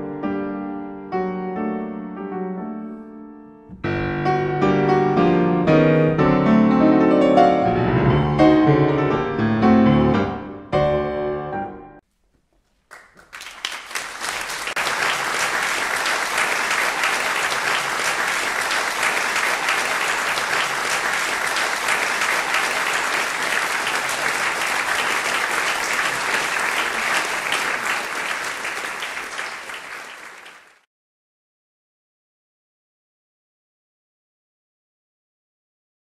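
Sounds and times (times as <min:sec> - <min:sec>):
audience applauding: 0:12.6 - 0:30.9.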